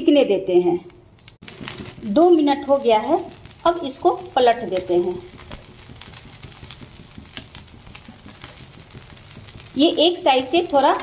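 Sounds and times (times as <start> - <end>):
patties sizzling in oil: 1.3 - 11.0.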